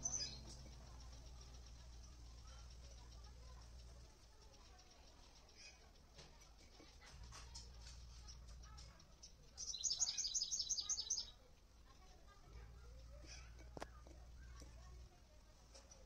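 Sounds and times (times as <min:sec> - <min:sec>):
low rumble: 0:00.0 - 0:04.0
faint bird chirps: 0:00.0 - 0:16.0
songbird singing: 0:00.0 - 0:16.0.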